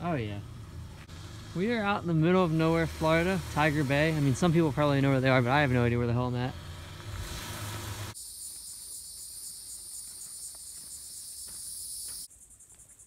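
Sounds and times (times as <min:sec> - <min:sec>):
insects buzzing: 0:00.4 - 0:13.0
pulsing insect trill: 0:08.1 - 0:13.0.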